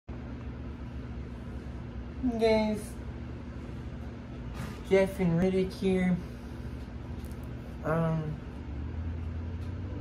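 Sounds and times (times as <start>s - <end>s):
low hum: 0.1s - 10.0s.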